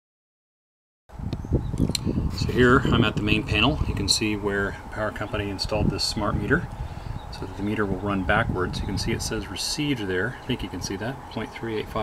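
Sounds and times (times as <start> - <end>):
low rumble: 1.2 - 9.5.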